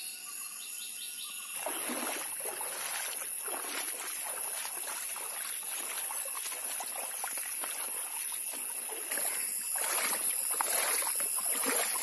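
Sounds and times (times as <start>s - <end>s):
stream babbling over pebbles: 1.6s - 12.0s.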